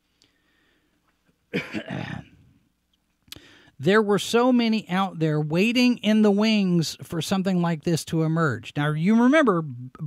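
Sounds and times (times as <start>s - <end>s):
man clearing his throat: 1.5s - 2.4s.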